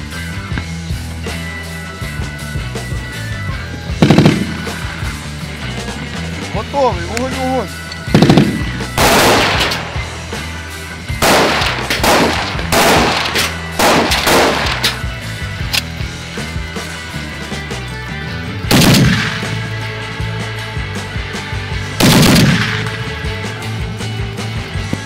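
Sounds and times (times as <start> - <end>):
machine gun firing bursts: 4.0 - 5.0, 8.1 - 10.2, 11.2 - 15.0, 18.7 - 19.7, 22.0 - 23.1.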